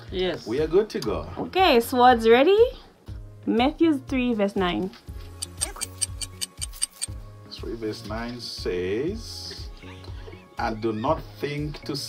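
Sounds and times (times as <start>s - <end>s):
soft background music: 0.0s - 12.0s
clock ticking: 5.4s - 7.2s.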